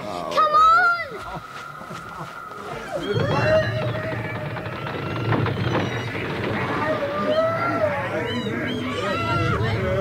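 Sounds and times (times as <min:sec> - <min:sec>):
voices crying out: 0:00.4 - 0:10.0.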